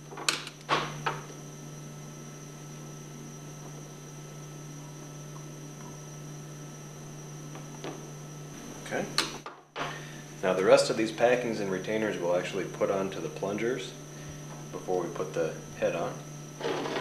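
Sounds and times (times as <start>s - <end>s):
steady low hum: 0.0s - 17.0s
faint high whine: 9.8s - 17.0s.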